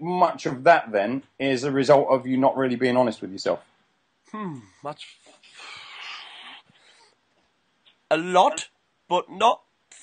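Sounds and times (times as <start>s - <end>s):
person sighing: 4.3s - 7.1s.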